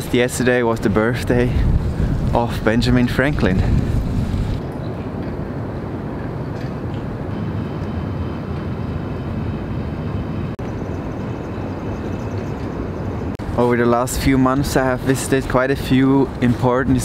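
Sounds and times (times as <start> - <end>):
distant city traffic rumble: 0.0 - 17.0.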